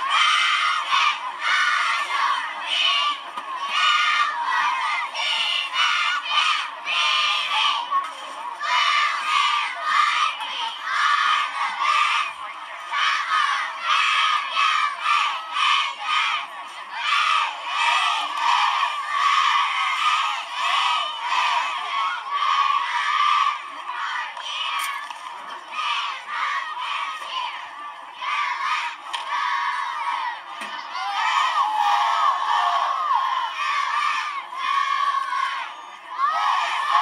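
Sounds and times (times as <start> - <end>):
cheerleaders chanting in unison: 0.0 - 37.0.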